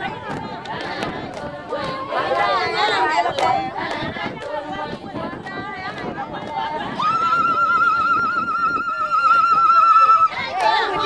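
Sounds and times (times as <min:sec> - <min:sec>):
chatter of voices: 0:00.0 - 0:11.0.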